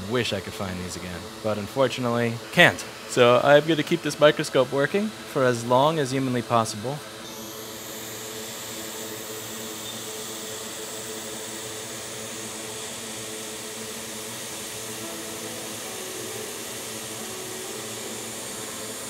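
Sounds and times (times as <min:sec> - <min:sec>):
hot air blowing: 0:00.0 - 0:19.0.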